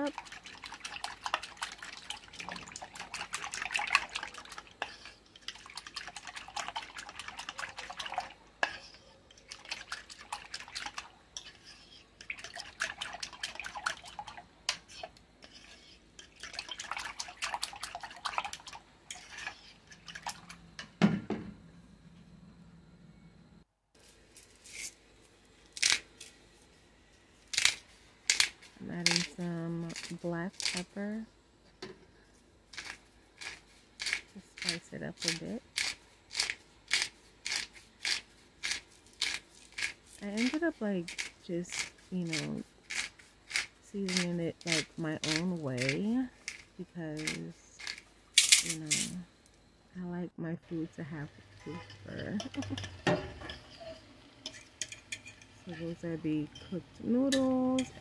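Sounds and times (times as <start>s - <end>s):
liquid sloshing: 0.0s - 11.6s, 12.2s - 15.1s, 16.2s - 20.6s.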